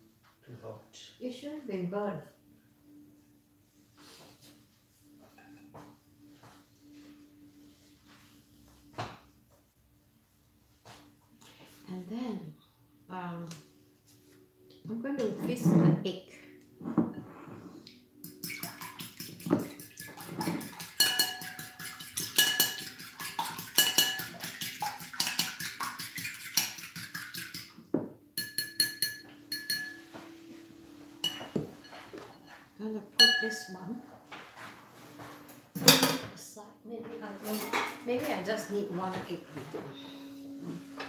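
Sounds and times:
fork whisking egg in bowl: 18.2s - 27.8s.

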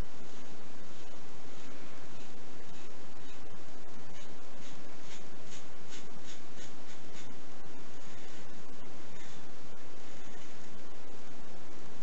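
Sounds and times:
razor scraping through stubble: 0.4s - 7.4s, 8.0s - 9.5s.

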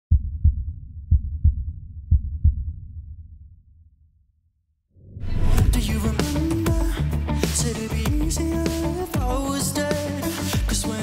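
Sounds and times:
heartbeat double thumps: 0.1s - 3.4s
low rumble: 5.0s - 7.2s.

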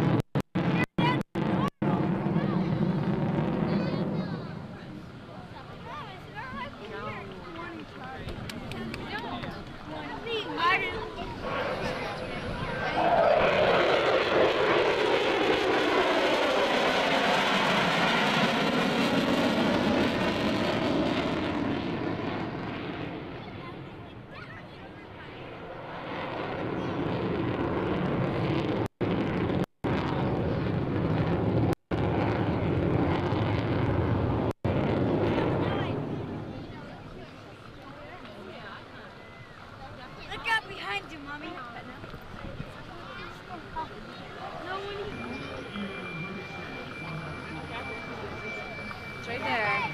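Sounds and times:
jet fighter roaring past: 0.0s - 37.8s, 44.3s - 49.9s.

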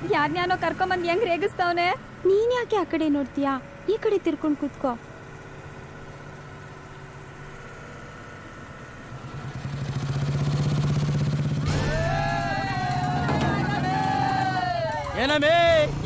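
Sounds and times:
motorcycle engine: 0.0s - 16.0s
vehicle engine drone: 0.0s - 16.0s
person shouting: 11.6s - 15.8s.

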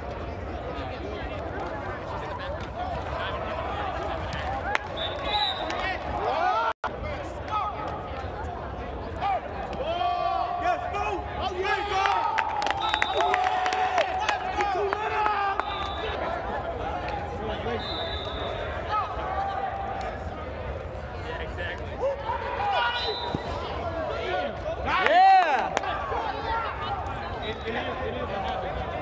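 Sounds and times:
people shouting and calling out: 9.1s - 20.6s, 21.8s - 29.0s.

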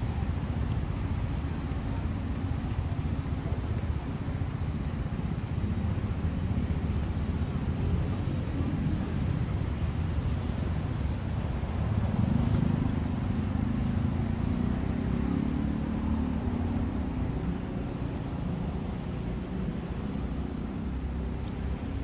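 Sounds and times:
motor traffic rumble: 0.0s - 22.0s.

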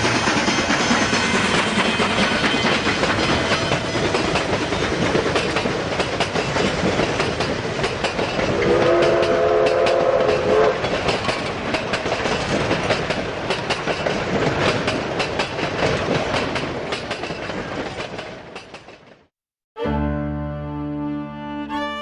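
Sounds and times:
train wheels clattering: 0.0s - 19.3s
steam whistle blowing: 8.5s - 10.8s.

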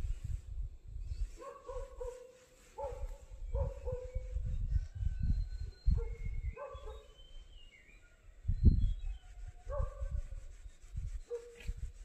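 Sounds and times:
wind buffeting microphone: 0.0s - 2.2s, 2.8s - 7.7s, 8.3s - 12.0s
dog barking: 1.4s - 4.0s, 6.6s - 7.1s
bird chirps: 3.4s - 9.5s.

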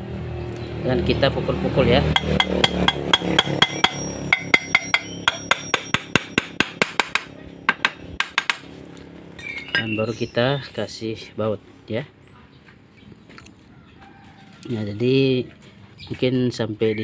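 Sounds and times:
hammer tapping metal cover: 2.1s - 8.6s.

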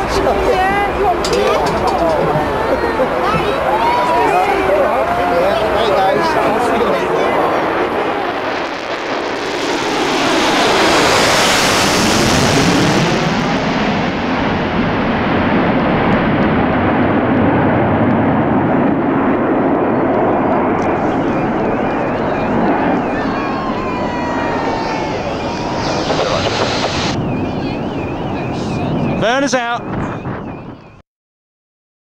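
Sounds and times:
jet engines roaring: 0.0s - 31.0s.

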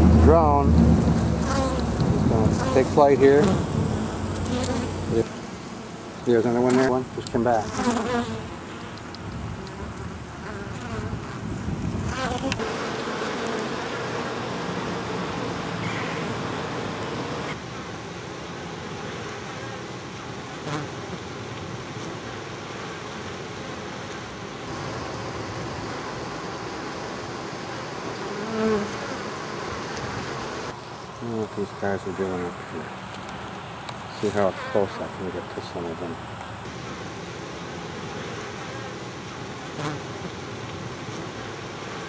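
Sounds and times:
honey bees buzzing: 0.0s - 17.6s, 21.8s - 42.0s.

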